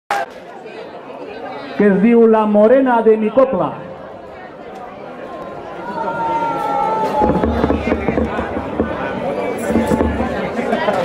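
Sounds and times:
low chatter of people: 0.1s - 11.0s.

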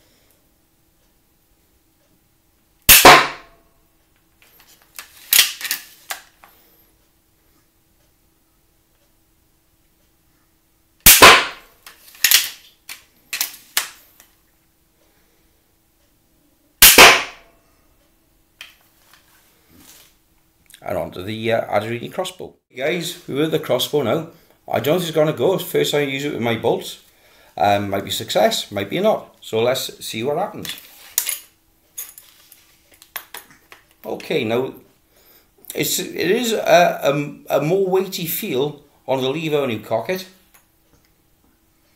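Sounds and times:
slingbow shot snapping: 2.9s - 3.5s, 11.1s - 11.6s, 16.8s - 17.4s
bolt impact crack: 2.9s - 3.6s, 5.3s - 6.2s, 11.1s - 14.0s, 16.8s - 17.5s.

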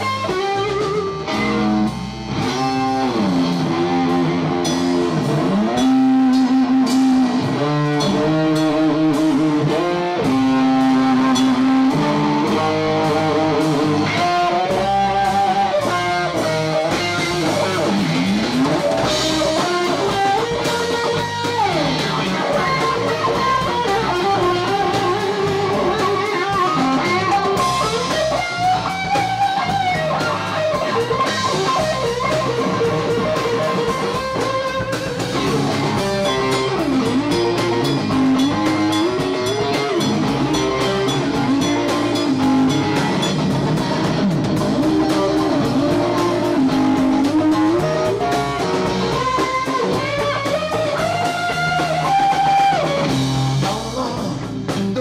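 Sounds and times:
bass guitar: 0.0s - 55.0s
drums: 0.0s - 55.0s
electric guitar lead: 0.0s - 55.0s.

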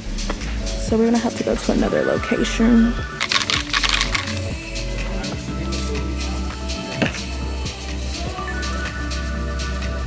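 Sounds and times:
background music: 0.0s - 10.0s
sharp clicks: 3.2s - 4.5s.

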